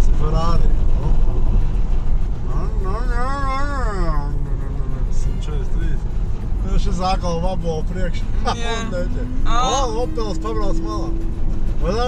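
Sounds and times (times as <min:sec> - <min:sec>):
road and tyre rumble: 0:00.0 - 0:12.0
person's wavering vocal sound: 0:08.4 - 0:10.4.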